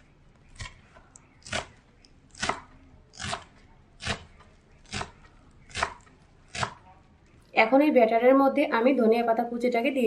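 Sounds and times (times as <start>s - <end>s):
knife chopping on wooden board: 1.4s - 6.8s.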